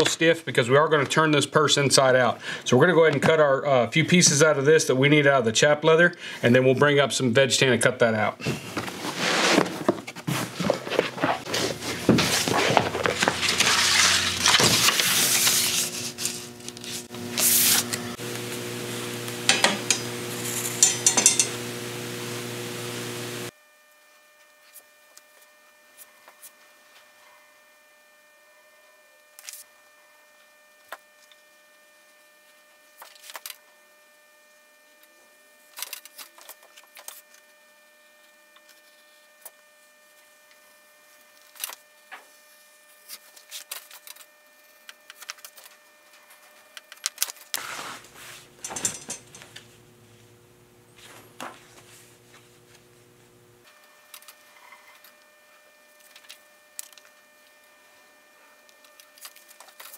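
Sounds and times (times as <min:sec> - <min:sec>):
leather rustling and sliding: 0:08.7 - 0:17.9, 0:47.6 - 0:48.5
steady low hum: 0:10.5 - 0:23.5, 0:47.8 - 0:54.5
clattering: 0:48.6 - 0:49.6.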